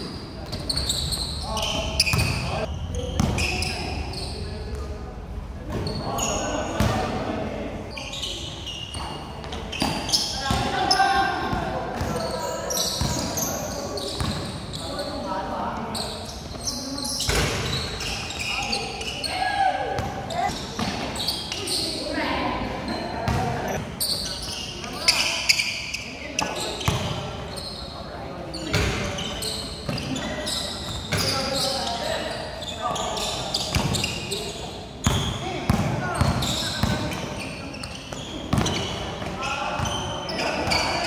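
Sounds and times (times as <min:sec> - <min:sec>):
players calling and chattering: 0:00.0 - 0:41.0
basketball bouncing on court: 0:02.0 - 0:02.5, 0:09.0 - 0:10.8, 0:14.2 - 0:14.6, 0:23.3 - 0:23.8, 0:35.0 - 0:37.2, 0:38.1 - 0:40.0.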